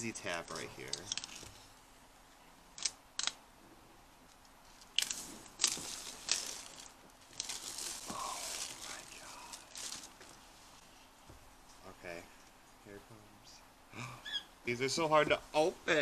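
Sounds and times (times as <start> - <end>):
plastic film crinkling: 4.7 - 10.8
shrink-wrap ripping: 4.8 - 10.4.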